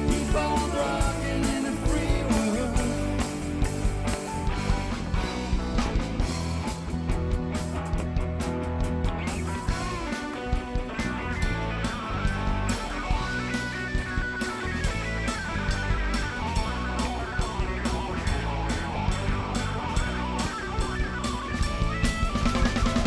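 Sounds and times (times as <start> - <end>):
bass guitar: 0.0 - 23.0
electric guitars: 0.0 - 23.0
steady drum beat: 0.0 - 23.0.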